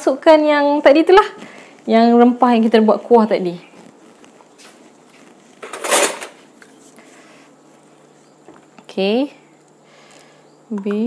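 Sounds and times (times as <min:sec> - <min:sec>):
kitchen scrape or rustle: 0:04.6 - 0:07.5.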